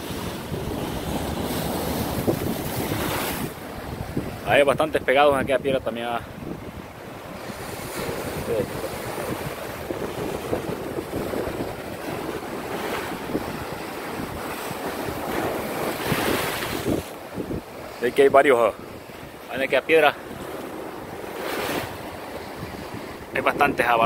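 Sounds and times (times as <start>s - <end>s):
ocean surf on rocks: 0.0s - 24.0s
wind buffeting microphone: 0.0s - 24.0s.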